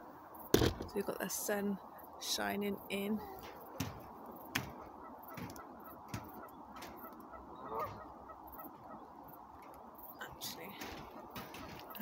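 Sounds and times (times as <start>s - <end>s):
soft knocks: 3.4s - 7.2s.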